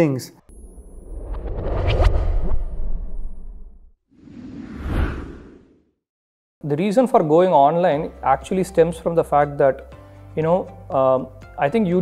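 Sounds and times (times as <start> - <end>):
deep low rumble: 0.5 - 4.0
whoosh transition effect: 0.5 - 5.8.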